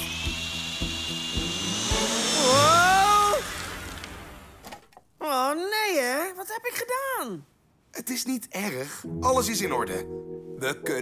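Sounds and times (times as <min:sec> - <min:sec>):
rising pitched sound: 0:00.0 - 0:04.6
power drill whirring: 0:00.0 - 0:04.9.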